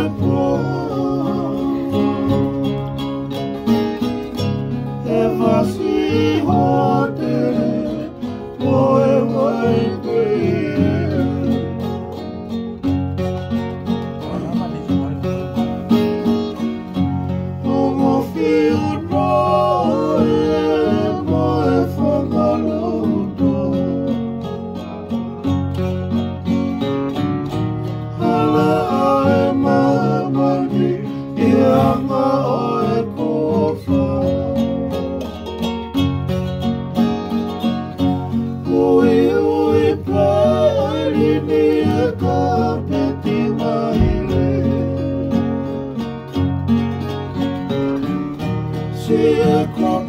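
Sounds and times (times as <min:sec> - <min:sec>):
men singing: 0:00.0 - 0:12.6, 0:16.7 - 0:24.8, 0:28.0 - 0:35.7, 0:38.0 - 0:46.4, 0:48.7 - 0:50.0
ukulele and acoustic guitars: 0:00.0 - 0:50.0.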